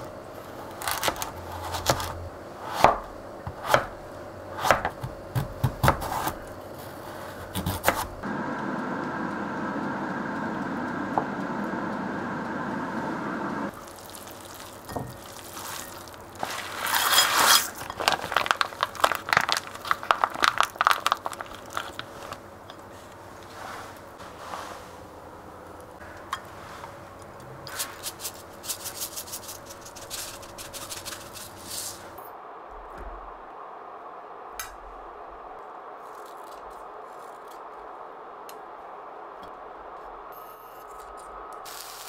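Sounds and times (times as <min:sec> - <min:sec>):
knife chopping on cutting board: 0:04.6 - 0:06.4
plastic packet crinkling: 0:13.7 - 0:22.4
steady hiss: 0:41.4 - 0:42.0.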